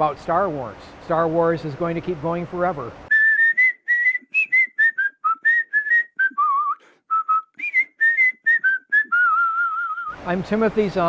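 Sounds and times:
person whistling a tune: 3.1s - 10.2s.

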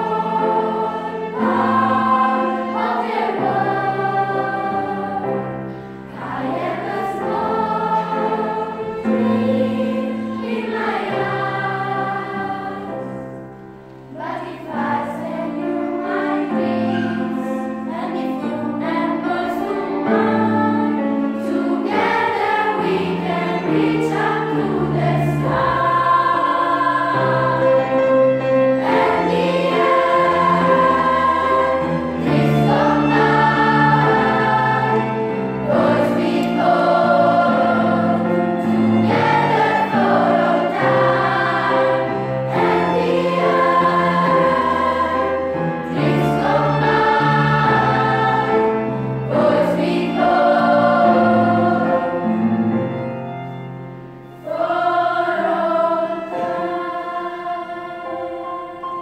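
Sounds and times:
choir singing in parts: 0.0s - 53.6s, 54.2s - 59.0s.

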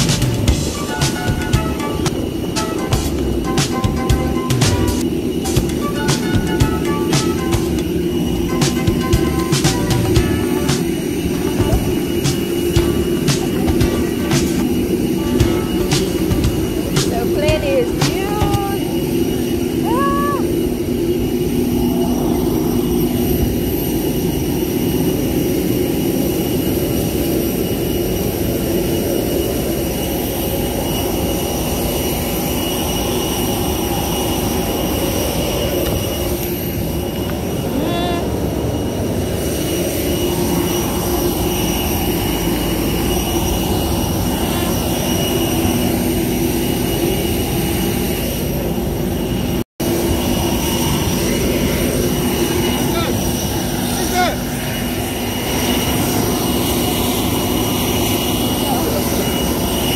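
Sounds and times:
jet aircraft hum and whine: 0.0s - 59.9s.

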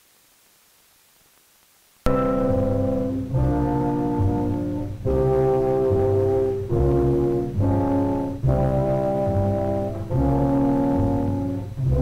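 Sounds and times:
orchestral brass chords: 2.1s - 12.0s.

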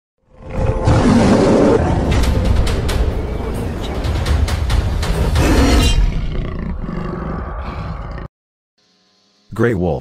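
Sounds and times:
music: 1.8s - 6.2s
low animal roar: 5.4s - 8.3s.

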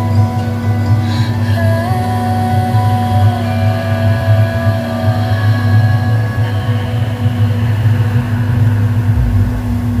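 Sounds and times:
outboard motor running: 0.0s - 10.0s
slow background music: 0.0s - 10.0s.

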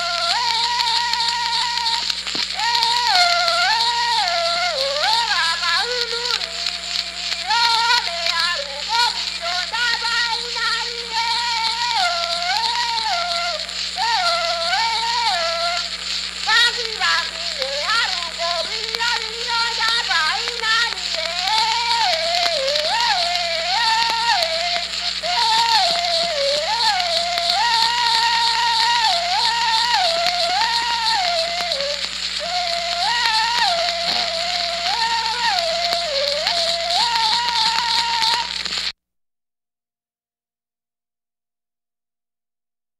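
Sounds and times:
lower voice singing: 0.0s - 38.7s
polyphonic yodel singing: 0.0s - 38.8s
surface hiss: 0.0s - 38.9s.

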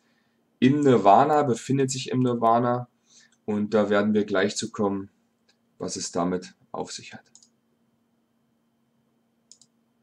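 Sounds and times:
faint steady hum: 0.0s - 10.0s
computer mouse clicks: 7.3s - 7.6s, 9.4s - 9.8s.

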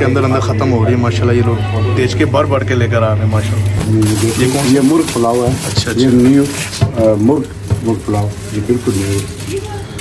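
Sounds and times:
voices talking: 0.0s - 10.0s
aluminium foil crinkling: 3.4s - 10.0s.

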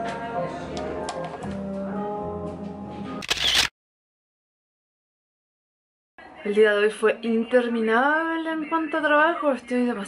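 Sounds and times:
background music with held notes: 0.0s - 3.2s
camera shutter click: 3.2s - 3.7s.

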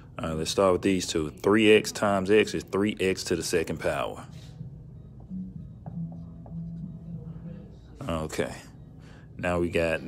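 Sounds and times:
marker writing on whiteboard: 5.8s - 7.6s.

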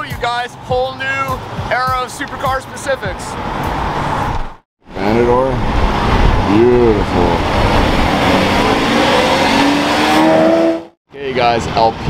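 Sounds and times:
car engine accelerating: 5.1s - 11.0s.

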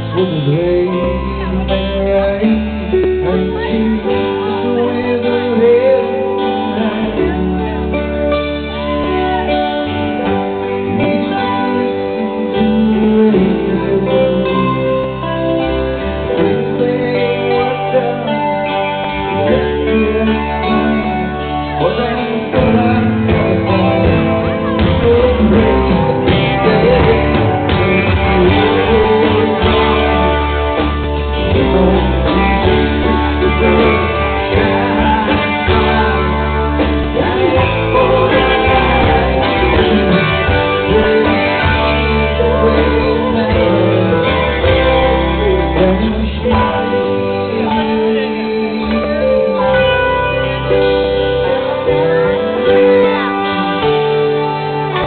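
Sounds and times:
drums: 0.0s - 55.0s
guitars strummed and plucked: 0.0s - 55.0s
rock band playing: 0.0s - 55.0s
steady low bass: 0.0s - 55.0s.

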